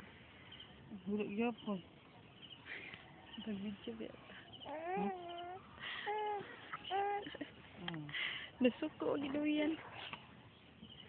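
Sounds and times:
baby crying: 4.7 - 7.4.

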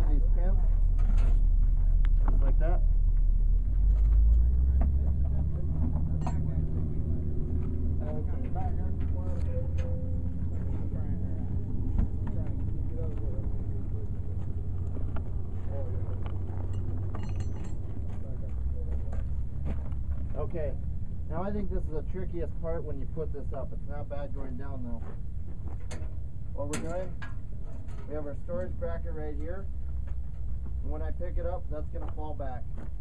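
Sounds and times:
metallic clinks: 16.6 - 17.9.

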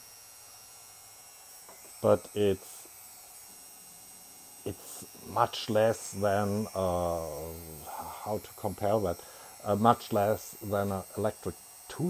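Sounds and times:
rotary tool motor whining: 0.0 - 12.0.

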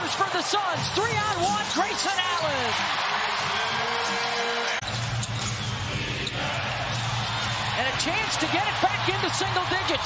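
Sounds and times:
arena crowd cheering: 0.0 - 4.8, 5.8 - 10.0.

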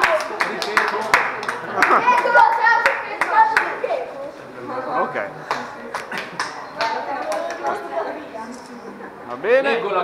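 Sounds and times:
people clapping: 0.0 - 4.0, 5.4 - 7.9.

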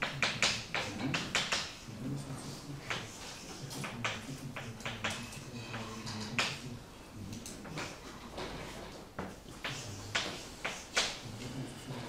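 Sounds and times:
chalk tapping and scraping on blackboard: 0.0 - 1.9, 2.7 - 6.6, 7.6 - 11.6.

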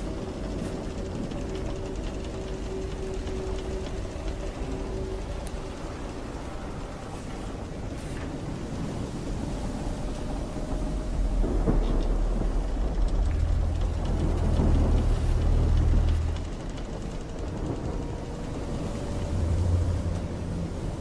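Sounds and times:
deep ship rumble: 0.0 - 21.0
ocean wash: 0.0 - 21.0
wind noise: 0.0 - 21.0.

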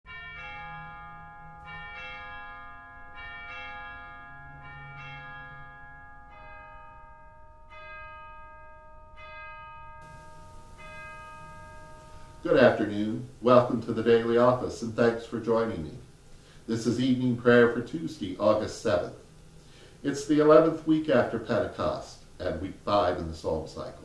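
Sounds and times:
church bells ringing: 0.1 - 19.2.

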